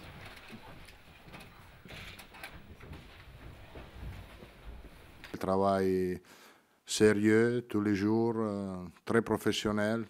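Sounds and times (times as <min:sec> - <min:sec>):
shuffling and footsteps: 0:00.0 - 0:05.4.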